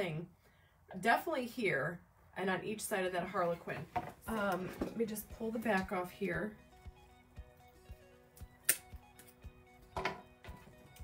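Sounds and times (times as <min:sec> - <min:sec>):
background music with soft beat: 0:03.6 - 0:11.0.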